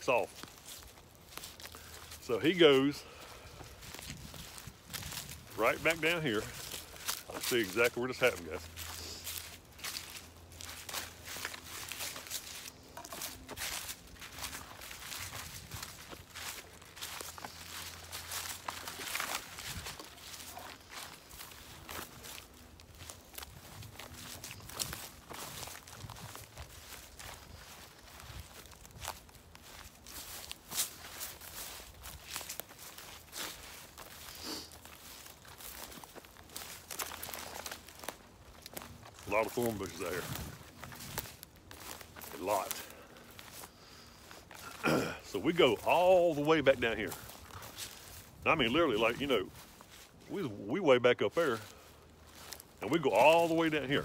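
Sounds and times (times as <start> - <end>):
footsteps crunching through dry leaves: 0.0 - 54.0.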